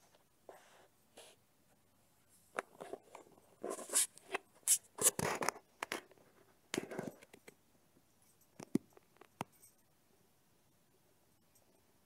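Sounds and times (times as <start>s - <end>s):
handling noise rustles and scrapes: 2.3s - 7.5s.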